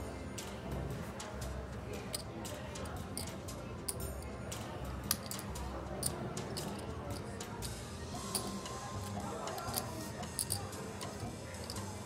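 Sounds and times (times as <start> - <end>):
low background music: 0.0 - 12.0
poker chips clicking: 3.2 - 4.0, 5.0 - 11.9.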